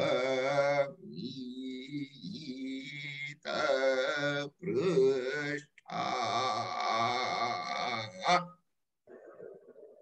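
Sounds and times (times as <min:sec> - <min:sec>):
man chanting verses: 0:00.0 - 0:01.1.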